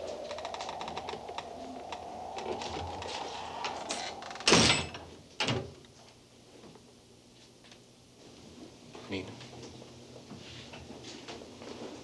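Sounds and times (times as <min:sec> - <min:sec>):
steady whistling tone: 0:00.0 - 0:05.3.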